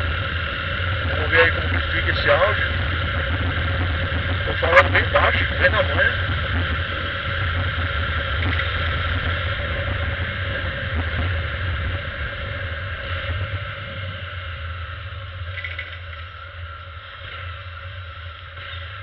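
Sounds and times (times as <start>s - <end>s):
motorcycle engine running: 0.0s - 19.0s
road noise: 0.0s - 19.0s
wind noise: 0.0s - 19.0s.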